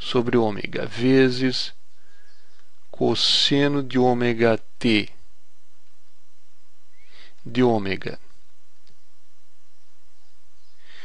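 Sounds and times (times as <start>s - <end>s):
man speaking: 0.0s - 1.8s, 3.0s - 5.2s, 7.4s - 8.3s
low electrical hum: 0.0s - 11.0s.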